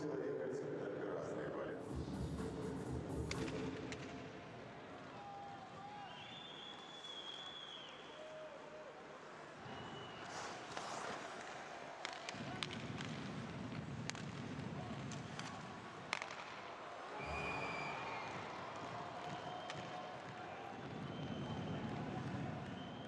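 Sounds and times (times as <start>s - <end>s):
sticks and puck clicking on ice: 10.2s - 16.8s.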